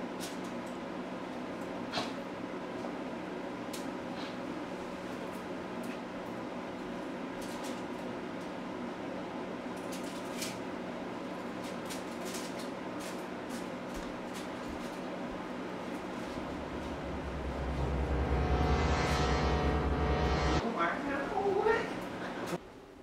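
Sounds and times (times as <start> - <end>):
low hum: 15.7 - 22.6.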